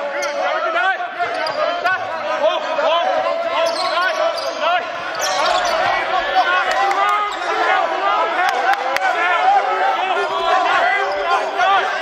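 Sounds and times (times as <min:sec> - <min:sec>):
sneakers squeaking on hardwood: 0:03.6 - 0:06.2.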